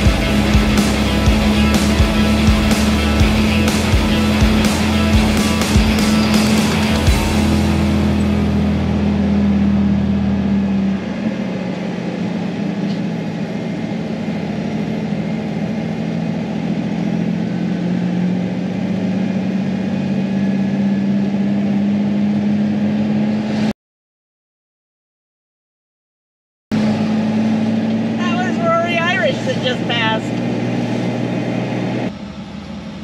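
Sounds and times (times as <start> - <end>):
vehicle engine and tyre drone: 0.0 - 23.7, 26.7 - 33.0.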